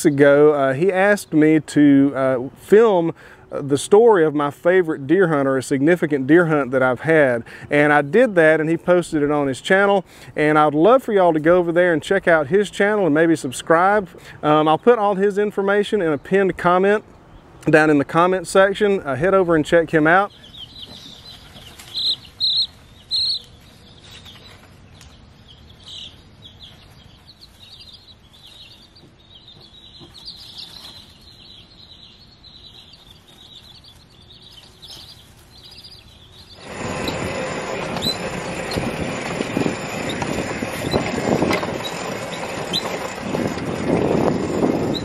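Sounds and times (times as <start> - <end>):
baby chicks peeping: 0.0 - 45.0
vehicle driving: 36.4 - 45.0.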